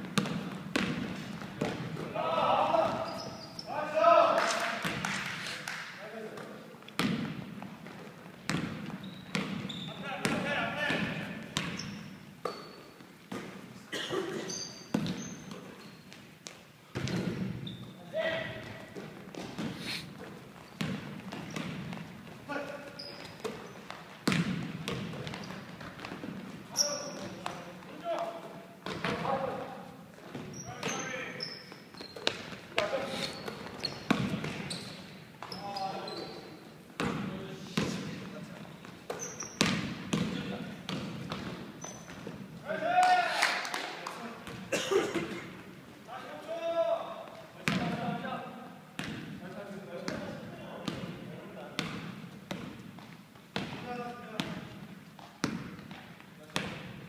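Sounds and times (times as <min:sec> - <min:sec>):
basketball bouncing on hardwood: 0:00.0 - 0:02.0, 0:07.0 - 0:07.4, 0:08.4 - 0:12.6, 0:14.9 - 0:15.2, 0:23.2 - 0:26.5, 0:33.5 - 0:34.7, 0:39.1 - 0:42.3, 0:49.0 - 0:49.3, 0:51.8 - 0:53.8
sneakers squeaking: 0:00.0 - 0:04.0, 0:06.3 - 0:42.6, 0:47.2 - 0:49.4, 0:50.0 - 0:57.0.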